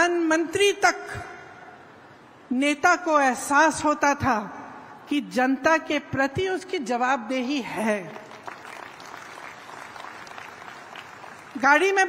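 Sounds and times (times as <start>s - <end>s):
crowd applauding: 8.2s - 11.6s.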